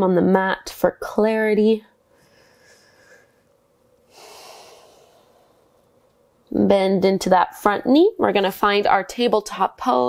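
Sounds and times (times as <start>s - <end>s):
woman breathing: 2.0s - 5.9s.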